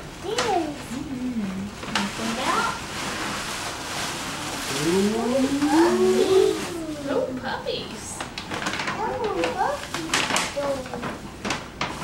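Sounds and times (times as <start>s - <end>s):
voices saying ooh: 4.7s - 7.4s
paper rustling: 8.2s - 12.0s.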